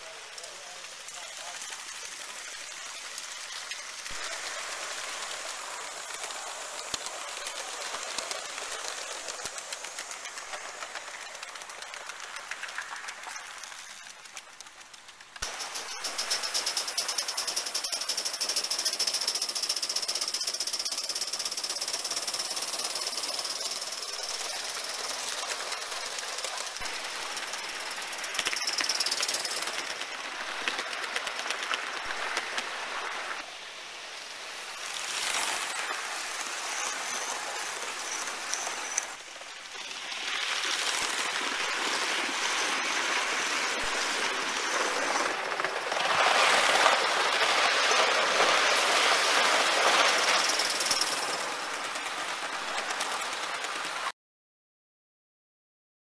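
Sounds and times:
steam hiss: 0.0 - 11.4.

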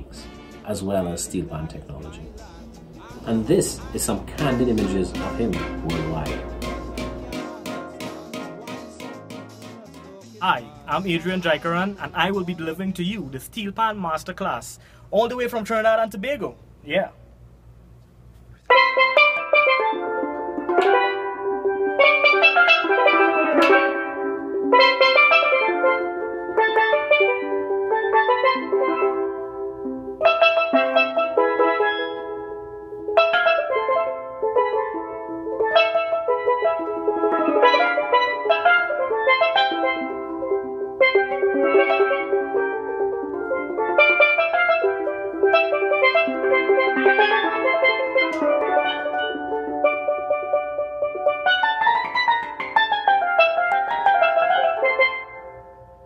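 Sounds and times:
steelpan melody: 0.0 - 17.5, 18.5 - 56.0.

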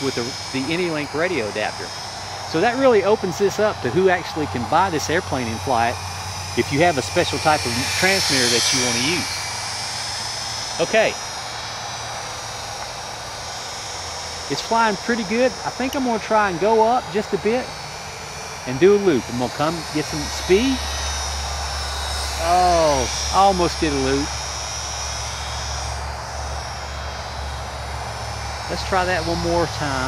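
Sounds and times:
small electric motor whining: 0.0 - 30.0.

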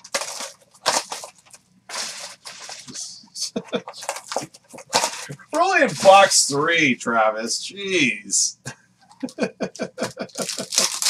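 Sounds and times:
foil wrappers crinkling and tearing: 0.0 - 3.0, 3.9 - 6.5, 10.2 - 11.0
man's voice: 2.9 - 4.0, 5.2 - 8.6.

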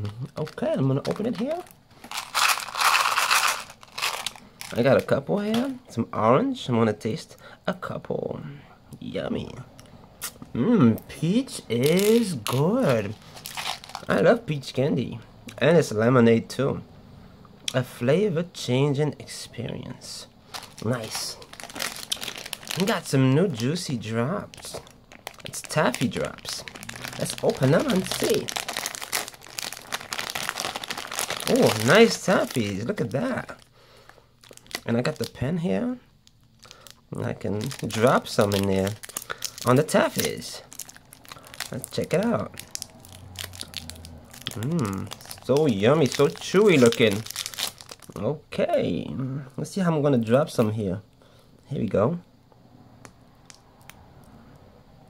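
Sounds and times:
plastic wrapper crinkling: 0.0 - 5.8, 11.6 - 14.2, 20.4 - 35.4, 36.2 - 48.2.

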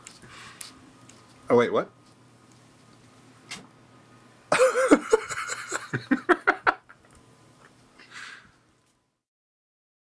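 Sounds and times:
man laughing: 4.5 - 7.0.

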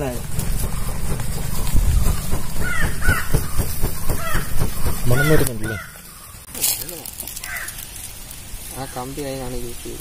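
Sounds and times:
crow cawing: 2.3 - 6.5, 7.4 - 7.9.

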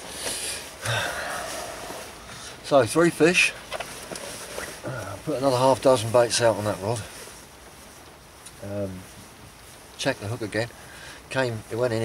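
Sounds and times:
person sighing heavily: 0.4 - 2.4.

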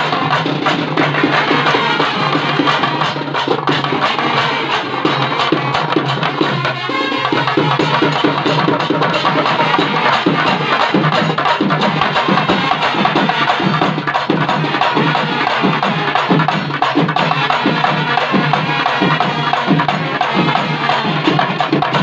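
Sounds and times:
steady drum beat: 0.0 - 22.0
trumpets and trombones: 0.0 - 22.0.

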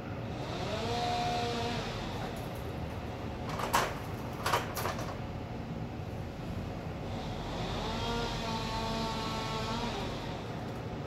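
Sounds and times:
motor humming: 7.1 - 10.8.

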